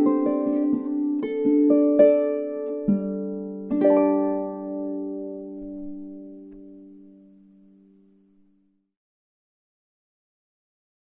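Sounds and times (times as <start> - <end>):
harp plucked notes and chord: 0.0 - 8.6.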